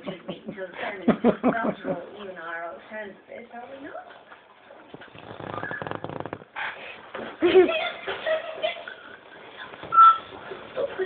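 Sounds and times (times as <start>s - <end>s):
low room noise: 0.0s - 11.0s
short high beep: 9.9s - 10.3s.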